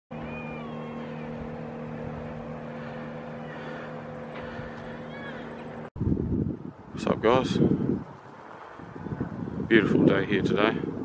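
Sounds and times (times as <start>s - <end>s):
low hum: 0.1s - 9.7s
high whistling calls: 0.2s - 1.5s, 2.8s - 5.6s.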